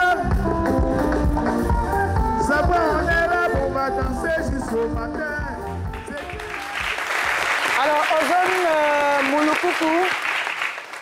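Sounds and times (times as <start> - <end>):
music: 0.0 - 10.0
audience applauding: 5.6 - 11.0.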